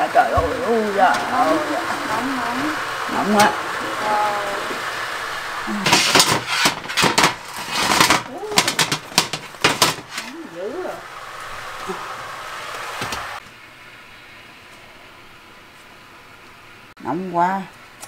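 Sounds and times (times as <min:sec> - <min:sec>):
steady hiss: 0:00.0 - 0:17.0
metal baking pans clattering: 0:05.8 - 0:10.3.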